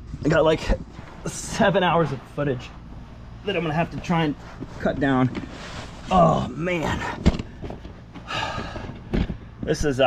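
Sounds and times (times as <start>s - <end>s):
man breathing out heavily: 7.6s - 9.4s.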